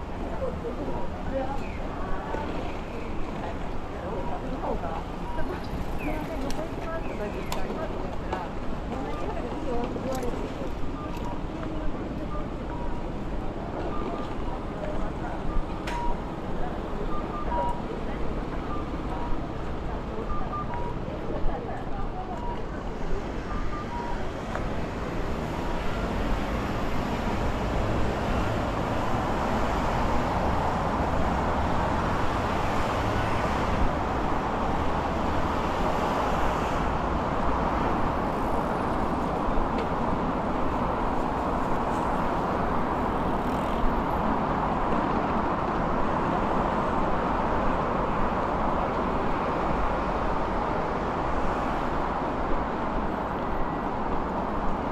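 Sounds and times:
road traffic rushing past: 22.8 - 54.9.

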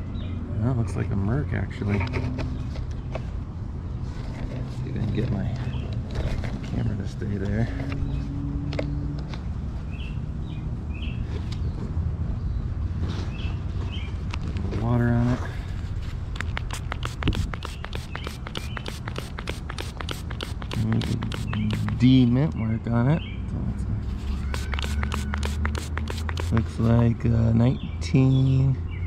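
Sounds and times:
fast sharp ticks: 16.3 - 22.0, 24.4 - 26.8.

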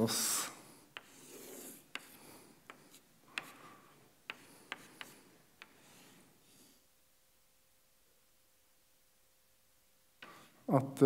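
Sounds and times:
chalk tapping on blackboard: 0.9 - 6.2
chalk scraping on blackboard: 0.9 - 6.6.

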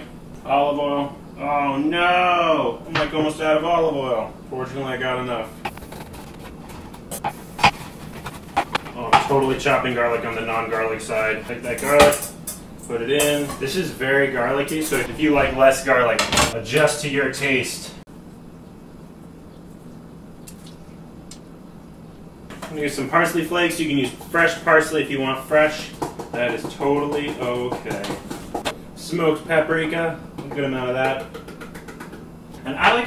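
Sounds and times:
low room hum: 0.0 - 33.0.

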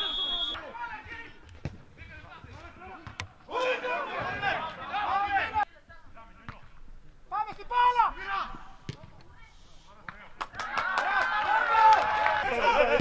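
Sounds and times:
players shouting: 2.8 - 5.7, 10.6 - 13.0.

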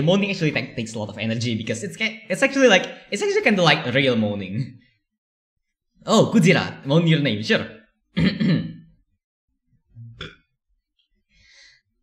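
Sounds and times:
man clearing his throat: 8.2 - 8.9.

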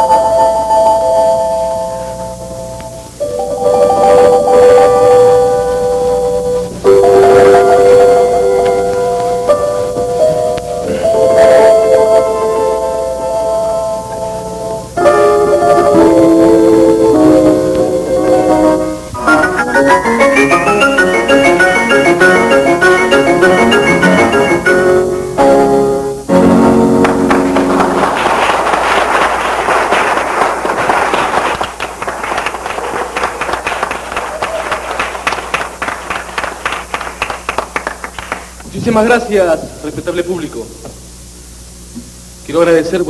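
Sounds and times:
slow piano chords: 0.0 - 30.6.

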